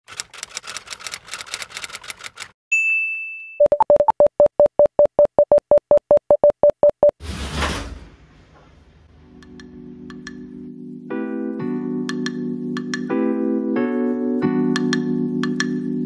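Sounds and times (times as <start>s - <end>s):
typewriter keys clacking: 0.0s - 2.6s
bell-like ding: 2.8s - 3.6s.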